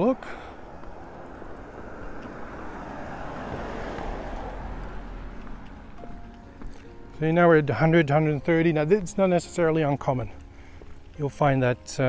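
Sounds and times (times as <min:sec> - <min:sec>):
vehicle driving past: 0:00.0 - 0:07.1.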